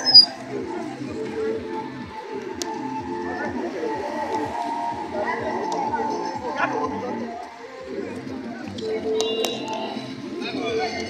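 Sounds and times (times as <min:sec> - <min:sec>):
music: 0:00.0 - 0:11.0
people's voices: 0:00.0 - 0:11.0.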